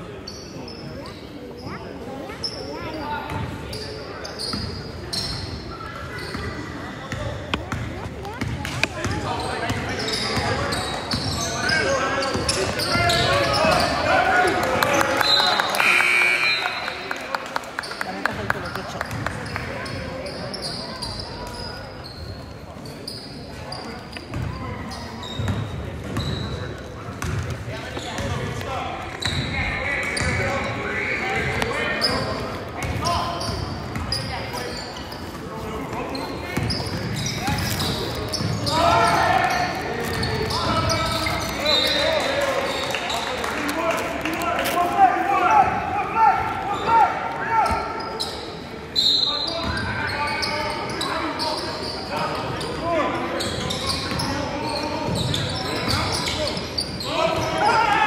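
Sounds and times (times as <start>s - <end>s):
players and spectators calling out: 0.2s - 26.7s, 27.7s - 58.0s.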